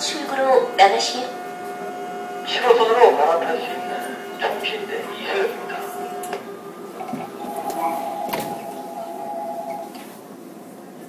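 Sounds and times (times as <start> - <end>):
steady high whine: 0.0 - 10.8
subway car running in tunnel: 0.0 - 11.0.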